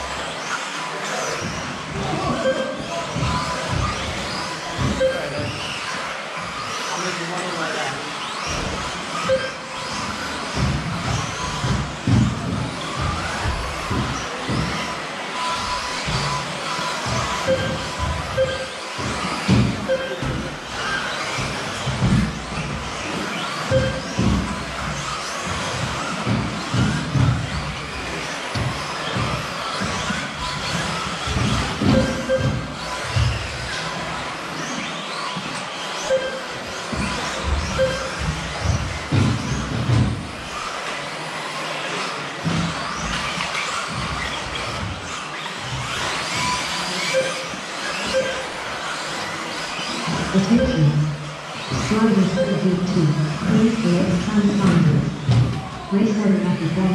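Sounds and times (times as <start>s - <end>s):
electric rc buggies running: 0.0s - 56.9s
short beeps: 2.3s - 2.8s, 5.0s - 5.4s, 9.2s - 9.7s, 17.4s - 18.8s, 19.9s - 20.3s, 23.7s - 24.1s, 31.9s - 32.7s, 36.1s - 36.5s, 37.8s - 38.1s, 47.1s - 48.6s, 50.4s - 51.3s, 52.2s - 53.3s.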